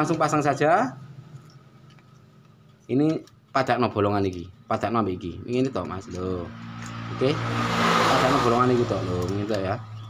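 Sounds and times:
man speaking: 0:00.0 - 0:01.0, 0:08.1 - 0:09.8.

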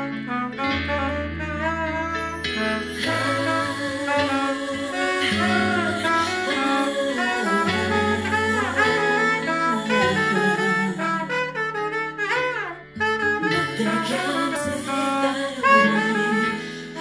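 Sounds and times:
backing track with bass line: 0:00.0 - 0:17.0
soprano saxophone jazz solo: 0:00.0 - 0:17.0.

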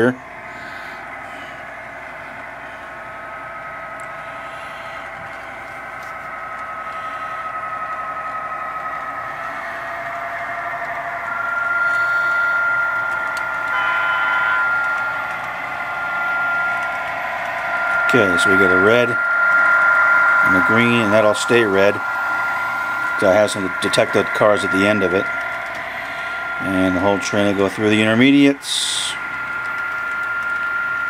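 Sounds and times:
chord of higher tones: 0:00.0 - 0:31.0
model locomotive engine droning: 0:00.0 - 0:31.0.

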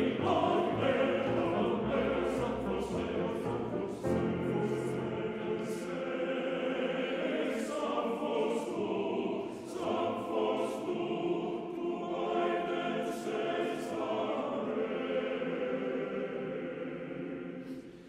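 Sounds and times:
piano accompaniment: 0:00.0 - 0:05.9
men's choir singing: 0:00.0 - 0:17.9.

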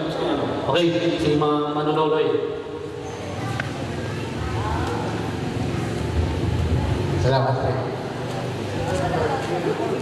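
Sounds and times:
faint voices: 0:02.8 - 0:10.0
low steady rumble: 0:05.7 - 0:07.9.

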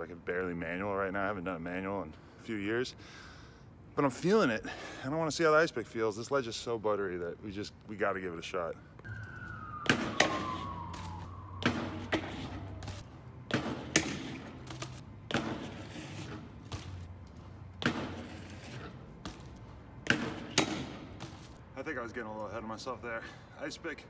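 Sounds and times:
bike knocking against concrete: 0:13.5 - 0:15.9, 0:16.6 - 0:21.5.

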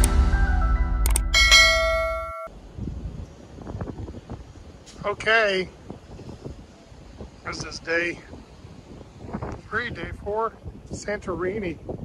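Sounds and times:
intro music: 0:00.0 - 0:02.5
notification bell ding: 0:01.3 - 0:02.5.

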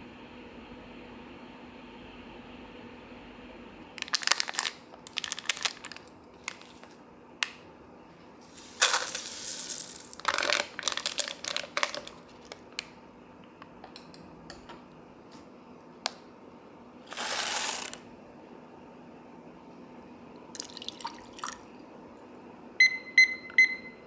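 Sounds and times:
plastic sachet crinkling: 0:04.0 - 0:07.0, 0:08.6 - 0:12.9, 0:17.1 - 0:18.0
powder hissing into paper cup: 0:08.4 - 0:12.5, 0:17.1 - 0:18.0.

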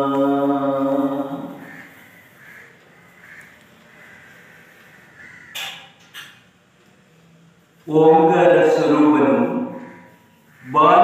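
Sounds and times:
crow cawing: 0:01.0 - 0:06.4, 0:08.8 - 0:11.0.

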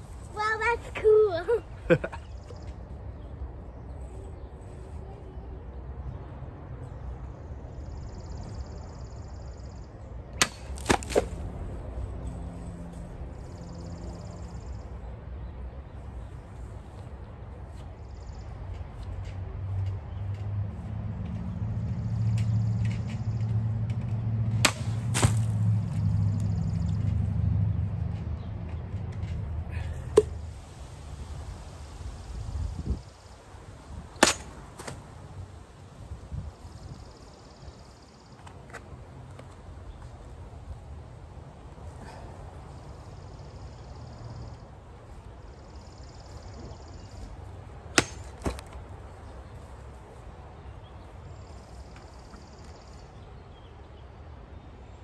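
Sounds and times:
sabre striking plastic bottle: 0:10.4 - 0:11.4, 0:24.6 - 0:25.6, 0:34.2 - 0:35.0, 0:48.0 - 0:48.6.

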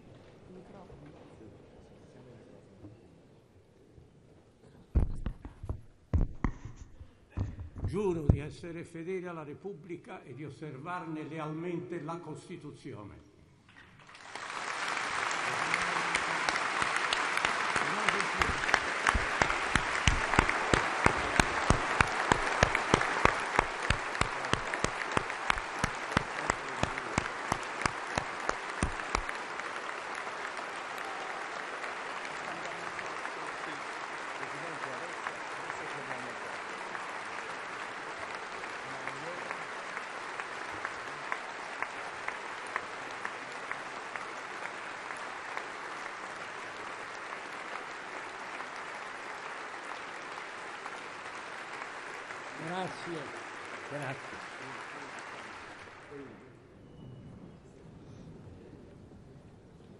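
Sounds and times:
rhythmic unison clapping: 0:05.0 - 0:08.6, 0:14.0 - 0:56.1
large crowd applauding: 0:14.0 - 0:56.5.

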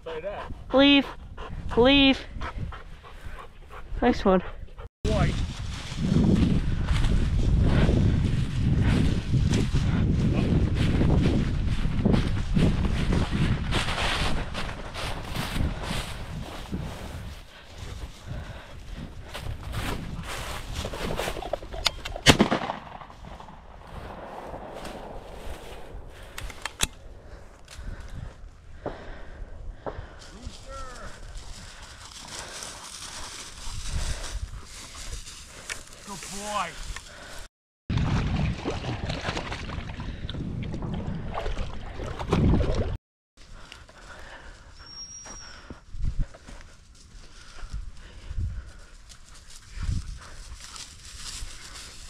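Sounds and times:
footsteps through dry grass: 0:05.1 - 0:21.8, 0:22.4 - 0:26.6, 0:27.2 - 0:37.5, 0:43.4 - 0:52.0
shotgun shot: 0:22.2 - 0:25.3.

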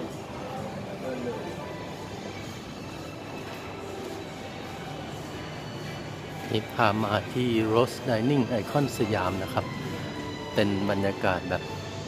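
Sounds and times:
indoor mall ambience: 0:00.0 - 0:12.0.

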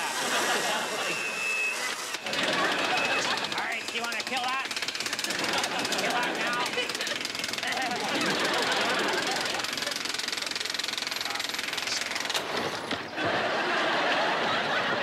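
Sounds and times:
electric drill rattling: 0:00.0 - 0:13.7.

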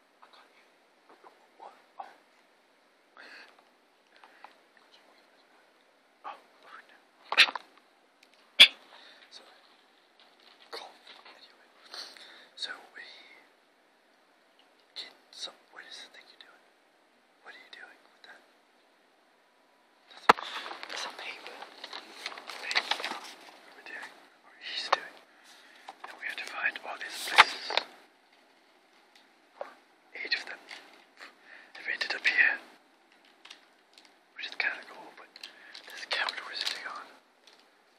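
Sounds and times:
person whispering: 0:00.2 - 0:02.3, 0:04.8 - 0:05.6, 0:06.2 - 0:07.6, 0:08.6 - 0:09.7, 0:10.6 - 0:13.5, 0:14.9 - 0:16.7, 0:17.4 - 0:18.5, 0:20.1 - 0:25.3, 0:26.0 - 0:27.9, 0:29.6 - 0:32.7, 0:34.4 - 0:37.2.

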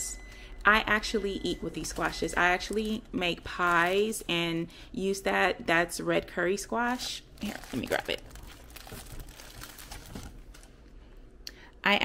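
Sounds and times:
rustling: 0:06.9 - 0:10.9.

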